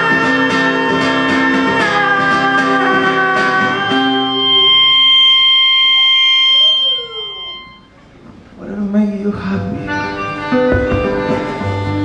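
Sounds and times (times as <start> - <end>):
melodica high note: 0.0 - 8.1, 9.9 - 12.0.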